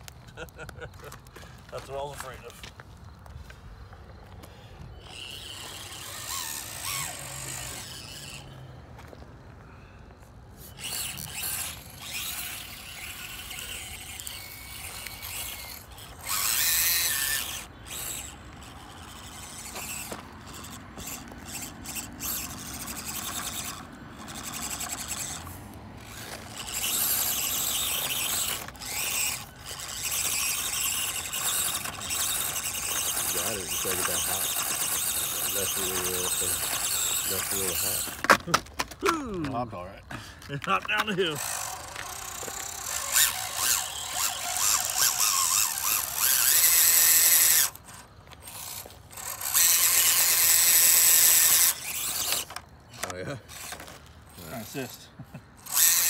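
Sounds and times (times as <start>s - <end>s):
toy car motors whining: 0.0s - 56.0s.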